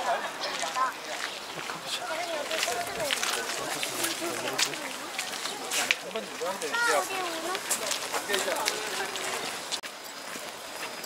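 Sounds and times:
passers-by talking: 0.0s - 9.8s
outdoor background noise: 0.0s - 11.0s.

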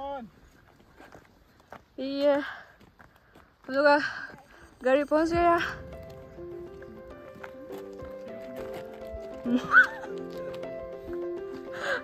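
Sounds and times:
background music with held notes: 5.4s - 12.0s.

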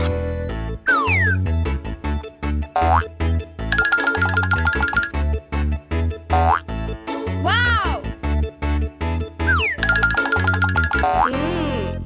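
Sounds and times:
bouncy cartoon music: 0.7s - 12.0s.

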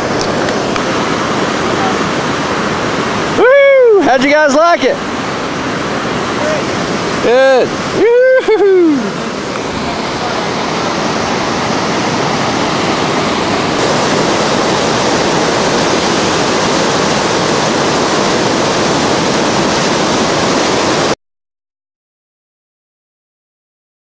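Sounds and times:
whitewater rapids rushing: 0.0s - 21.2s.

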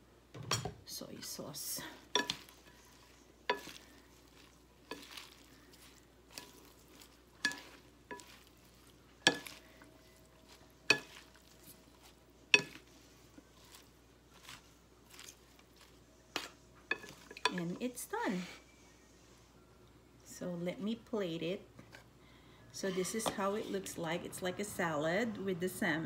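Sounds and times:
salad leaves rustling: 1.2s - 18.0s.

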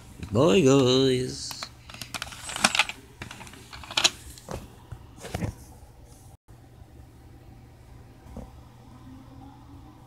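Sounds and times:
phone being handled: 1.5s - 4.6s.

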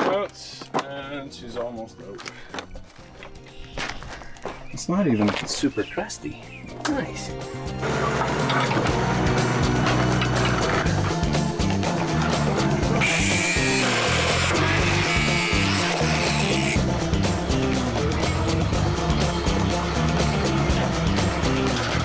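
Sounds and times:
music with steady beat: 6.6s - 22.0s
angle grinder cutting metal: 12.6s - 16.9s.

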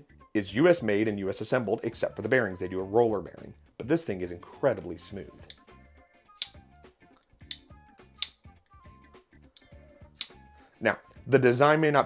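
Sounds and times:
soft background music: 0.0s - 12.0s
folding knife clicks: 5.4s - 5.6s, 6.3s - 6.6s, 7.2s - 8.8s, 9.6s - 10.4s.

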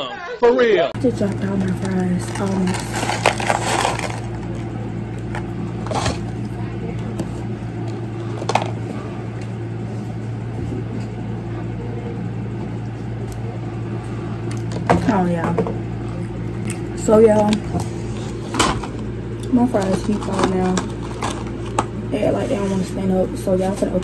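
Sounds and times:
steady low hum: 0.0s - 24.0s
paper packaging rustling: 1.2s - 4.6s, 19.8s - 21.8s.

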